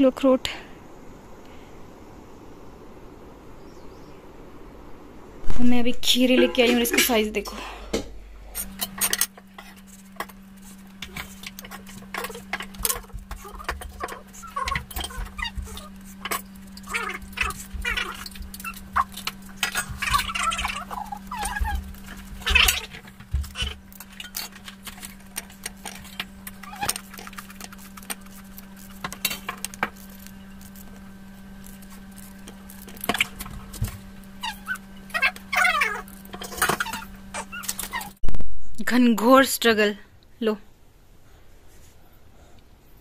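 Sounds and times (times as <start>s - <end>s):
steady low hum: 0.0s - 43.0s
squeaky grater scraping cucumber: 8.6s - 38.2s
pet whimpering: 11.2s - 23.8s, 25.9s - 27.3s, 34.4s - 38.2s.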